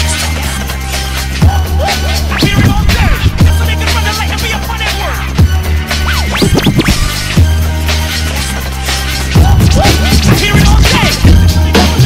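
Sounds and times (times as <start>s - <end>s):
hip-hop beat with heavy bass: 0.0s - 12.0s
vinyl record scratching: 1.8s - 5.1s, 5.9s - 7.4s, 9.4s - 12.0s.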